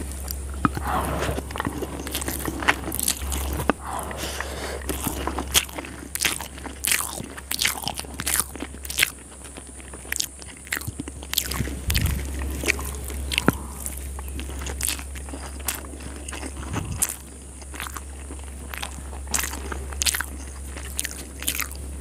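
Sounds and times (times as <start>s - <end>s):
wet chewing mouth clicks: 0.1s - 21.9s.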